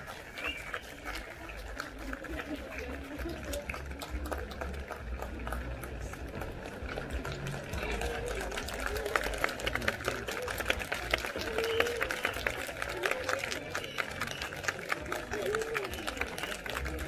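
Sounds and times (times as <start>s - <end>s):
crowd chatter: 0.0s - 17.0s
crowd clapping: 0.0s - 17.0s.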